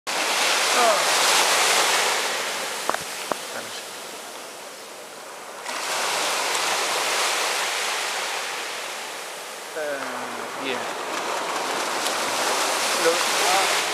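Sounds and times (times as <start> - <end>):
waves washing onto beach: 0.1 - 13.9
person speaking: 9.7 - 11.0.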